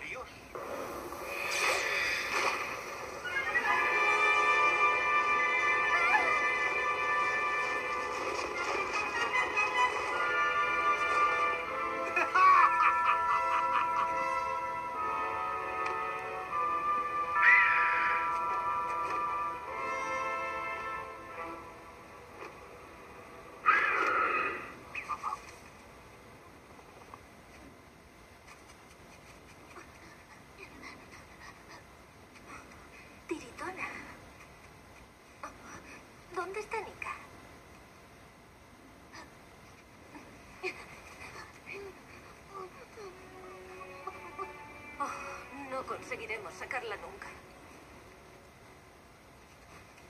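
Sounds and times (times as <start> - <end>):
rushing magic beam effect: 0.6 - 5.9
orchestral score: 3.1 - 24.8, 42.9 - 48.5.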